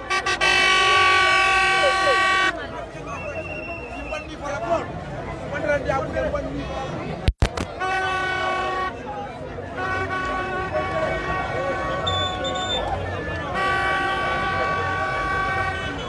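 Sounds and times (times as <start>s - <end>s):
vehicle horn blasts: 0.0s - 2.6s, 7.8s - 9.1s, 9.7s - 12.8s, 13.4s - 16.0s
crowd voices: 0.0s - 16.0s.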